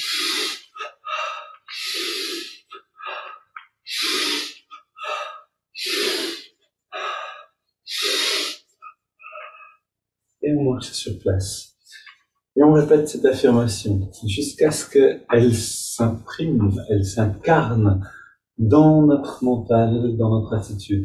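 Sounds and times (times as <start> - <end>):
man breathing forcefully: 0.0 - 9.7.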